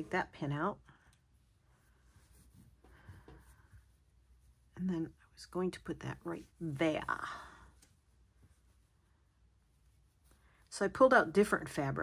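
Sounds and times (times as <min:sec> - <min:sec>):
hands rustling fabric: 0:00.0 - 0:11.8.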